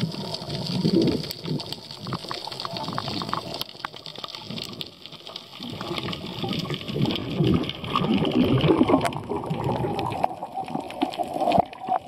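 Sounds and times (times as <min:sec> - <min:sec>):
muffled underwater rushing water: 0:00.0 - 0:12.0.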